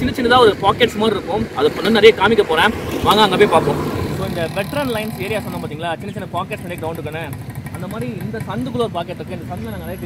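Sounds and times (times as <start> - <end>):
man talking: 0.0 - 10.0.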